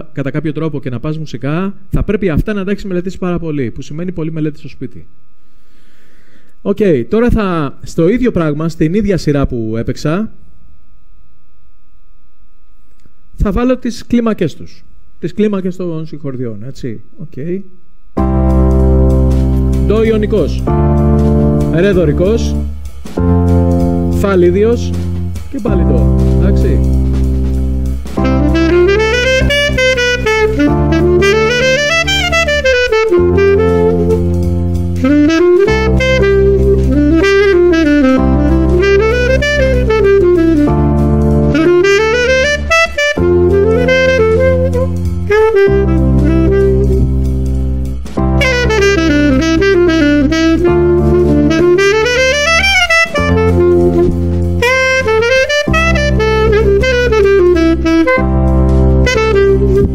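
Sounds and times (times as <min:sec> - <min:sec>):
sustained backing chords: 0:18.0 - 0:59.9
saxophone playing scales: 0:18.2 - 0:59.9.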